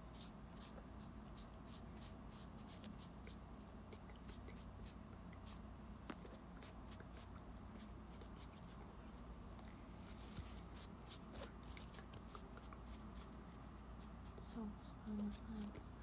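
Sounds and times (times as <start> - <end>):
paintbrush scratching on microphone: 10.1 - 15.8.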